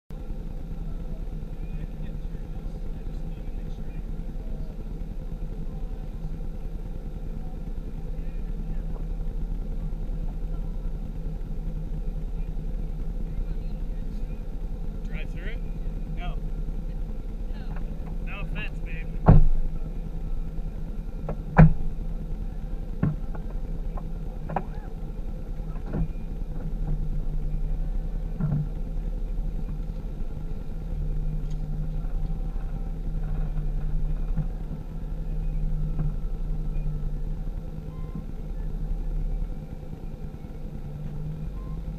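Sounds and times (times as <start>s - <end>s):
vehicle engine idling: 0.1s - 41.9s.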